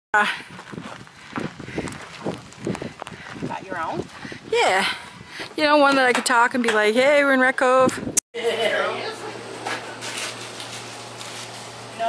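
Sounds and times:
footsteps on hard ground: 0.2s - 6.2s, 9.6s - 11.9s.

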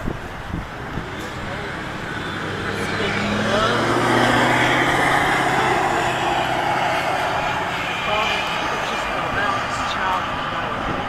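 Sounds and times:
vehicle driving past: 0.9s - 11.0s.

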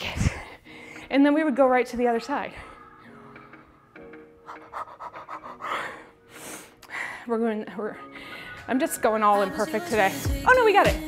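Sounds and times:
faint background music: 0.0s - 11.0s
woman panting: 4.4s - 7.3s.

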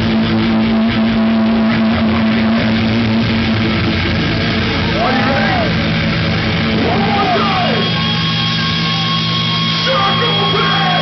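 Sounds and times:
distorted electric guitars droning: 0.0s - 11.0s
guitar feedback: 0.0s - 11.0s.

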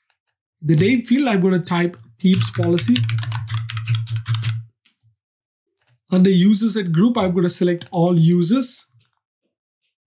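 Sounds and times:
computer keyboard typing: 2.2s - 4.6s.

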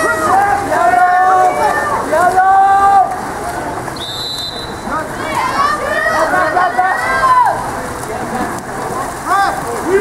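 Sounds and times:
swimmers splashing in pool: 0.0s - 10.0s.

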